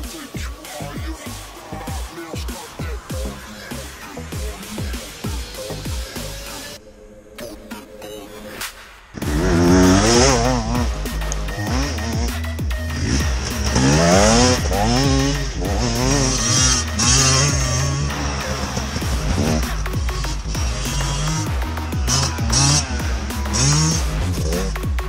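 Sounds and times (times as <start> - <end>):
electronic music with heavy beat: 0.0 - 6.8, 7.4 - 25.0
dirt bike engine revving: 9.2 - 25.0.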